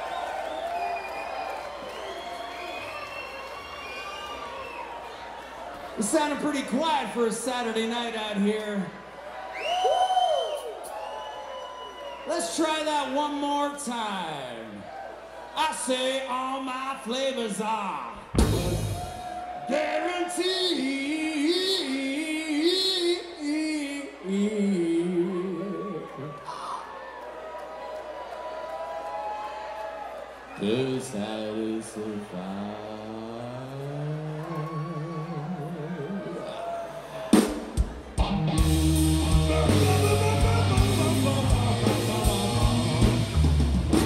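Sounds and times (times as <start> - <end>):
crowd cheering and whooping: 0.0 - 6.3, 8.8 - 12.4, 14.8 - 15.6, 18.4 - 21.5, 24.2 - 30.8, 32.1 - 44.0.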